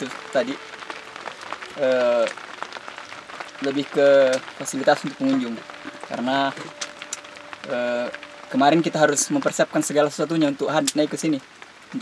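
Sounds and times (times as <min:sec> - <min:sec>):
rain pattering: 0:00.0 - 0:12.0.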